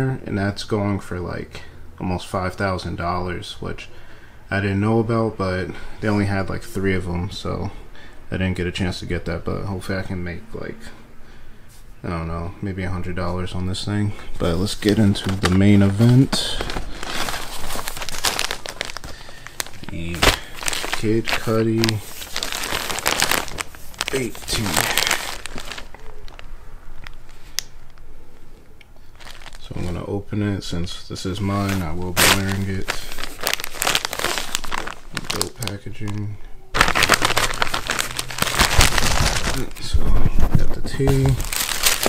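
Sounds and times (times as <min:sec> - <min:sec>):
plastic bag crinkling: 0:14.3 - 0:28.0, 0:29.1 - 0:30.0, 0:31.4 - 0:42.0.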